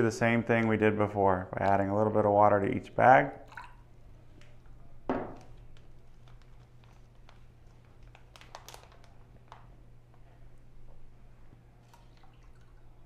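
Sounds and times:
plastic bag crinkling: 5.4s - 9.8s.

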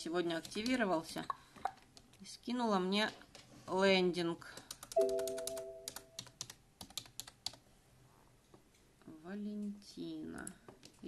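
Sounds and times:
keyboard typing clicks: 4.6s - 7.6s.

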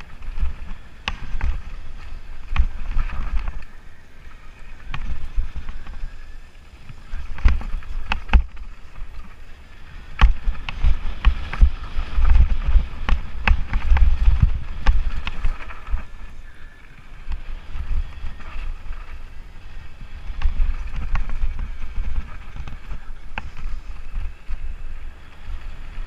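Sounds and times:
bike frame and chain rattling: 0.0s - 26.0s
wind rumble on microphone: 0.0s - 26.0s.

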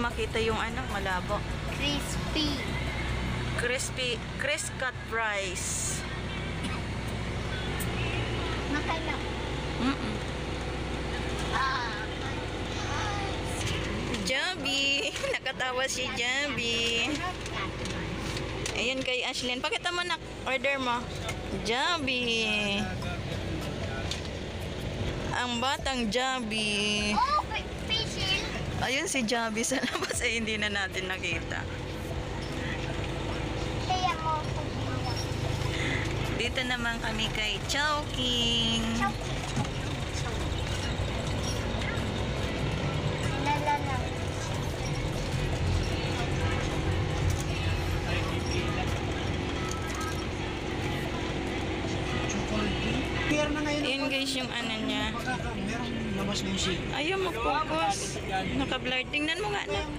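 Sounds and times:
car engine idling: 0.0s - 59.9s
vehicle rumble inside cabin: 0.0s - 59.9s
faint voices: 30.4s - 59.9s.

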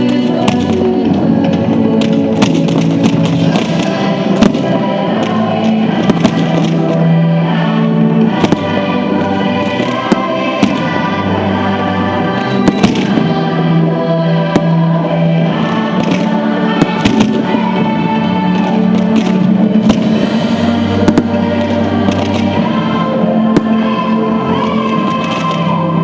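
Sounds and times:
loud music with held notes: 0.0s - 26.0s
firework shells bursting: 18.5s - 22.7s.

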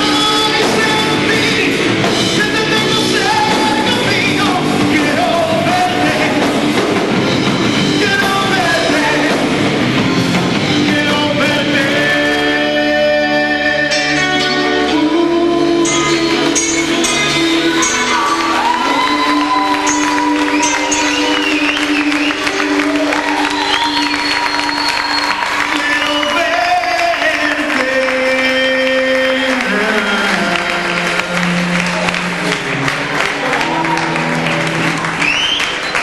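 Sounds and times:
crowd applause and cheering: 0.0s - 36.0s
live rock band playing: 0.0s - 36.0s.

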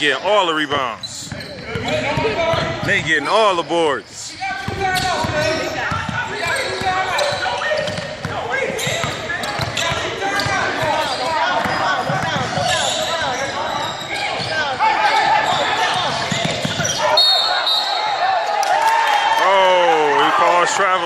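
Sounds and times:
voices in a large hall: 0.0s - 21.0s
basketball dribbling on hardwood: 11.6s - 12.7s.

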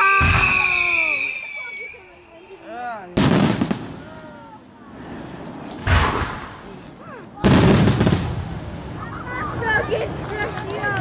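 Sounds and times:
fireworks exploding: 0.0s - 2.2s, 3.2s - 5.2s, 7.4s - 11.0s.

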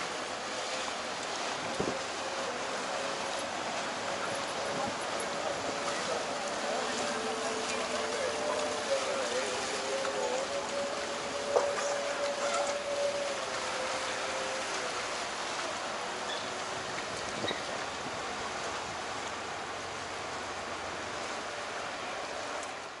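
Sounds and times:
motorboat engine: 0.0s - 23.0s
water washing: 0.0s - 23.0s
faint wavering tone: 7.6s - 15.0s.

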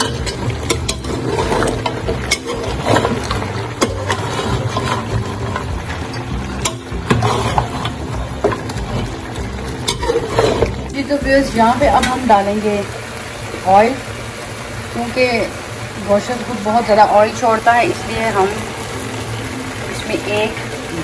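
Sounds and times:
metal spatula scraping a pan: 0.0s - 9.1s, 9.8s - 10.9s.

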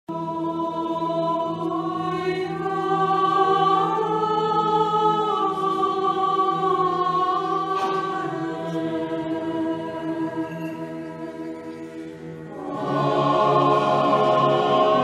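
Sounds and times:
choir singing slowly: 0.1s - 15.0s.

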